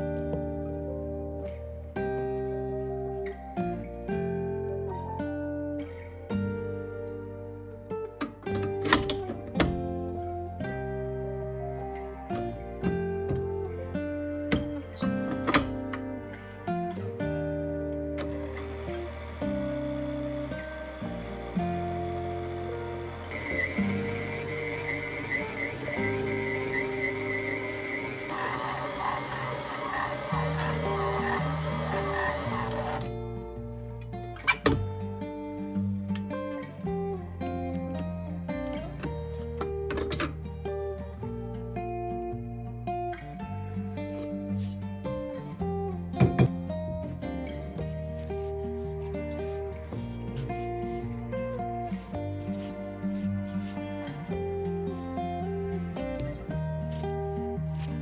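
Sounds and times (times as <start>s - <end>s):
acoustic guitar music: 0.0s - 58.0s
stand mixer motor running: 18.2s - 33.1s.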